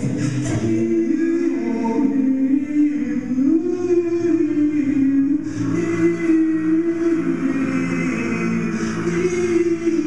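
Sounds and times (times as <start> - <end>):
lower pulsing vocal note: 0.0 - 10.0.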